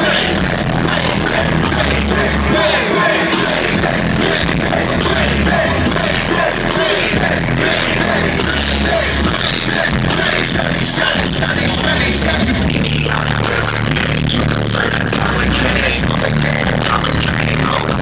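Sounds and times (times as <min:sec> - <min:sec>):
live hip-hop music with heavy bass: 0:00.0 - 0:18.0.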